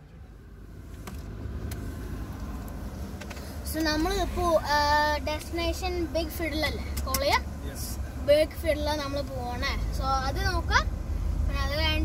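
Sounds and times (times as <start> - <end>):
car engine rumbling: 0.0 - 12.0.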